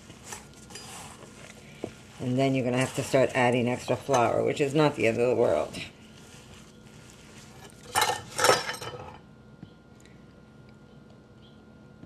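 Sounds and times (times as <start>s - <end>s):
dough scraping in metal bowl: 0.0s - 9.2s.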